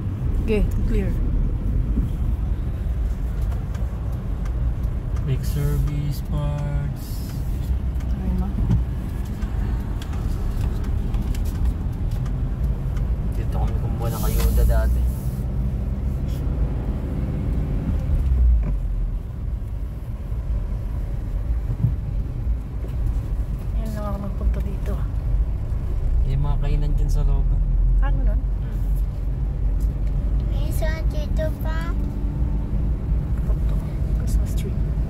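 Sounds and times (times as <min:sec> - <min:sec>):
car engine and road rumble inside: 0:00.0 - 0:35.0.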